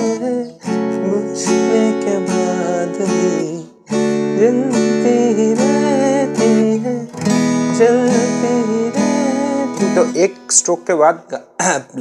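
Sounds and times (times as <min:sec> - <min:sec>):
man singing: 0:00.0 - 0:10.8
acoustic guitar strumming: 0:00.0 - 0:11.2.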